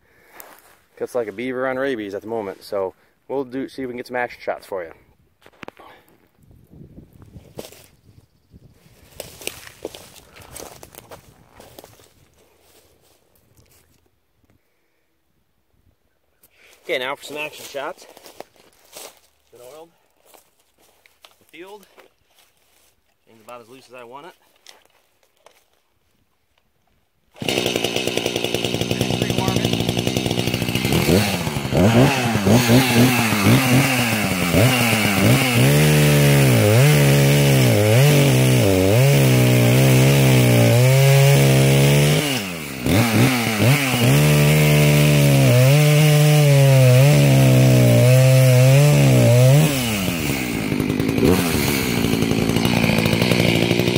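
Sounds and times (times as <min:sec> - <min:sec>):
footsteps crunching on dry leaves: 0:00.2 - 0:01.6, 0:07.5 - 0:08.0, 0:08.9 - 0:14.0, 0:16.7 - 0:25.8
chainsaw revving: 0:27.3 - 0:53.9.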